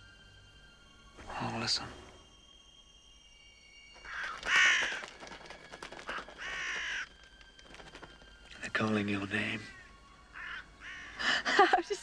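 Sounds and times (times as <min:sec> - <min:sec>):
crows cawing: 0:04.0 - 0:08.4, 0:09.7 - 0:11.7.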